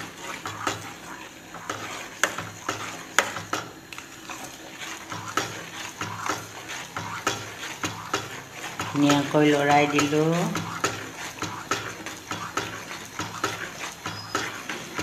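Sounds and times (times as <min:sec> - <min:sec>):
metal spoon scraping a pot: 0:00.0 - 0:15.0.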